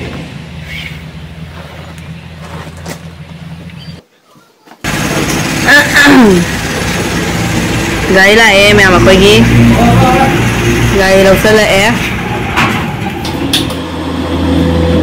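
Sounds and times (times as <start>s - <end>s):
person's voice gliding in pitch: 9.7s - 10.5s.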